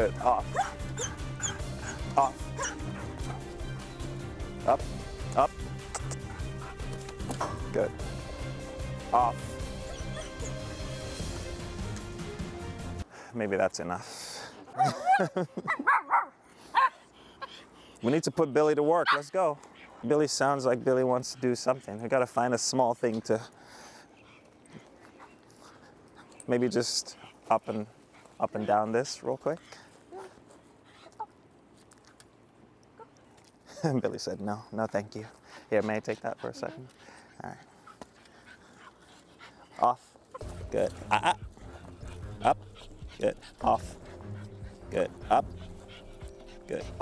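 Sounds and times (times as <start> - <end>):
small dog whimpering: 0.5 - 3.0, 9.8 - 10.7, 35.8 - 37.0
small dog barking: 2.6 - 3.1, 14.8 - 17.0.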